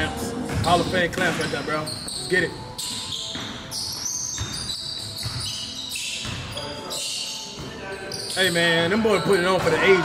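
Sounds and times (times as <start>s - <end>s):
basketball bouncing on wooden floor: 3.0s - 5.6s, 6.2s - 6.6s
players' voices: 6.5s - 10.0s.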